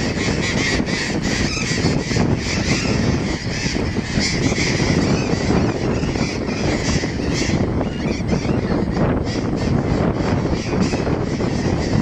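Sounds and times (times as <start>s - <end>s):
parrots calling harshly: 0.0s - 12.0s
wind on microphone: 0.0s - 12.0s.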